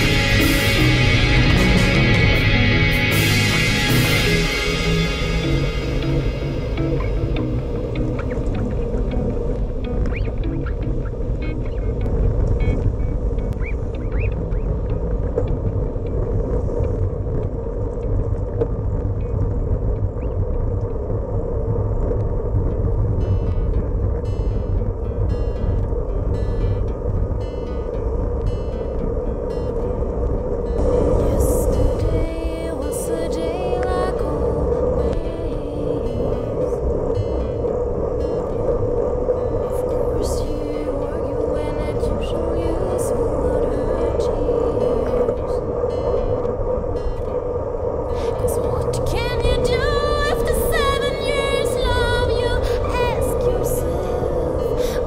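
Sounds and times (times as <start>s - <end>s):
road noise: 0.0s - 55.0s
steady hum: 0.0s - 55.0s
wind rumble: 0.0s - 55.0s.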